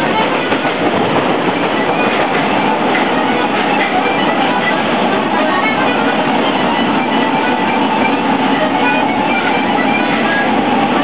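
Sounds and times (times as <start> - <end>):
faint accordion notes: 0.0 - 11.0
train running on track: 0.0 - 11.0.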